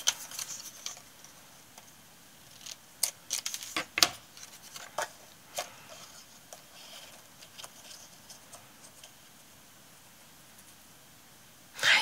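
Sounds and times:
paper rustling: 0:00.0 - 0:01.4, 0:02.4 - 0:09.4.

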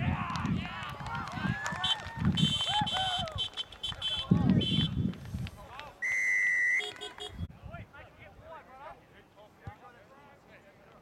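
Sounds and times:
referee's whistle blast: 0:06.0 - 0:07.4
players shouting: 0:06.0 - 0:07.5.

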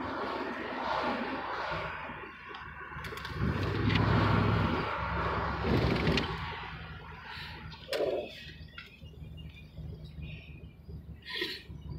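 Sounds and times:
car engine from inside cabin: 0:02.5 - 0:11.9.

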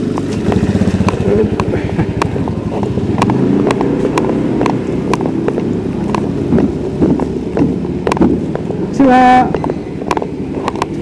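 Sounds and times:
motorcycle engine running slowly: 0:00.0 - 0:11.0
sharp clicks: 0:09.5 - 0:11.0.

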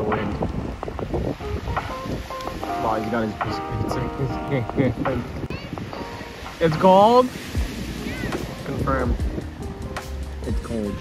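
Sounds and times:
waves washing onto pebbles: 0:00.0 - 0:09.6
wind buffeting microphone: 0:00.0 - 0:11.0.

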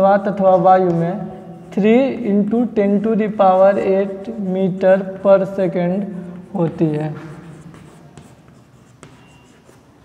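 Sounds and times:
chalk tapping on board: 0:00.0 - 0:02.2, 0:06.3 - 0:10.0
chalk scratching on chalkboard: 0:00.0 - 0:10.0.

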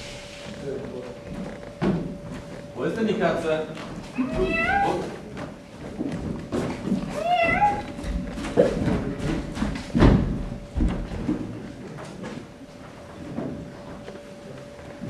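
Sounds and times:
person imitating cat meows: 0:04.2 - 0:05.1, 0:07.2 - 0:07.9.

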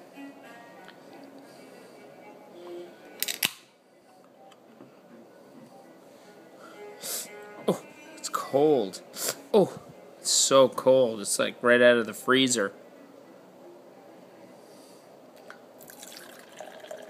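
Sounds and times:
faint background music: 0:00.0 - 0:17.0
beer can tab snapping open: 0:03.2 - 0:03.7.

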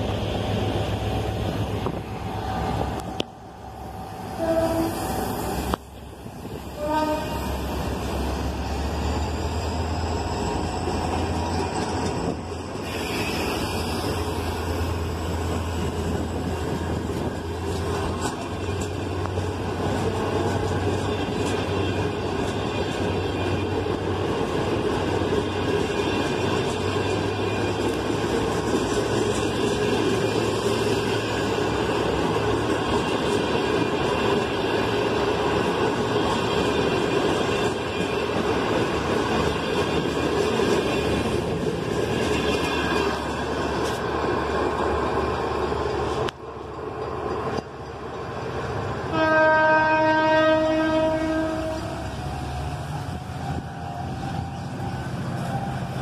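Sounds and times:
train horn blast: 0:04.4 - 0:05.1, 0:06.8 - 0:07.7, 0:49.1 - 0:52.1
train wheels clattering on rails: 0:05.2 - 0:56.0.

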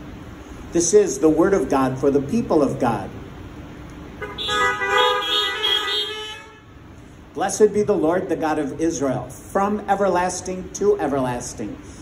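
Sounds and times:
car horns honking: 0:04.2 - 0:06.8.

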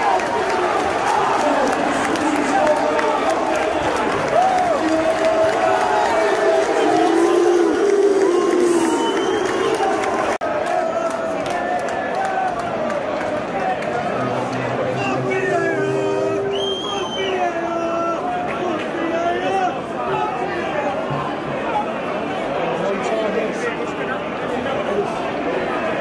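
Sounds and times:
crowd voices calling out: 0:00.0 - 0:22.8.

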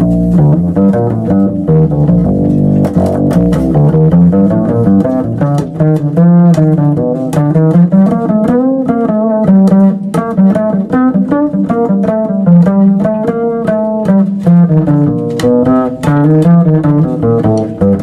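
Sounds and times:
plucked double bass: 0:00.0 - 0:18.0.

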